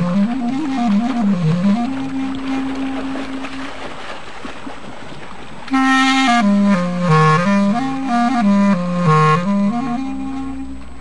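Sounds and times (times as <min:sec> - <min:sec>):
clarinet melody: 0:00.0 - 0:03.8, 0:05.7 - 0:11.0
instrumental held note: 0:05.7 - 0:11.0.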